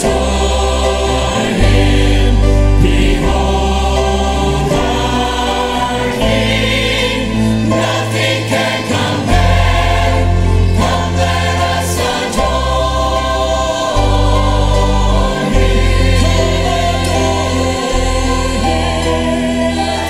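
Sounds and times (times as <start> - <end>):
church choir singing: 0.0 - 20.0
instrumental accompaniment: 0.0 - 20.0
man and woman soloists singing: 0.0 - 20.0.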